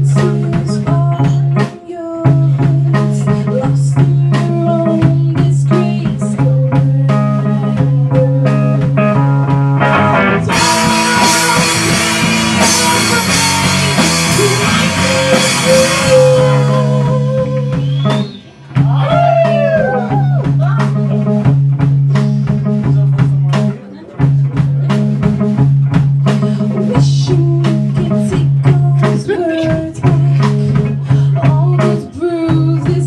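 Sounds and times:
rock band playing: 0.0s - 33.0s.

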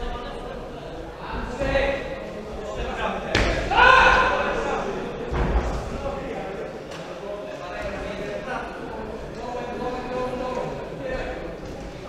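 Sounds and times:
loud drawn-out shout: 3.7s - 4.8s.

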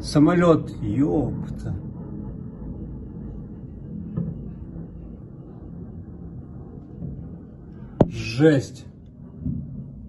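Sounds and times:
loud thump: 4.1s - 4.6s, 7.0s - 8.3s.

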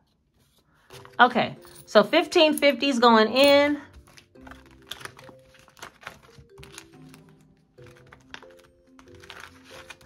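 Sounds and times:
soft background music: 0.0s - 10.0s
banknotes and plastic crinkling: 0.1s - 10.0s.

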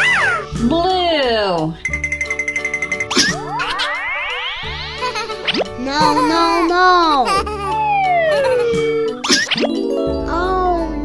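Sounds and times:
children's background music: 0.0s - 11.0s.

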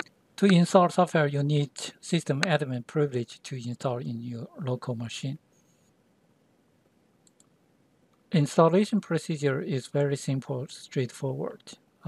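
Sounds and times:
computer mouse clicks: 7.2s - 8.2s.

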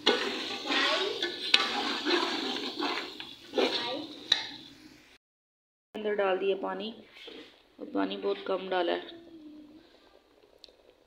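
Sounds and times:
bubbling gravy: 0.0s - 4.6s
ladle scraping in pot: 0.0s - 4.6s.

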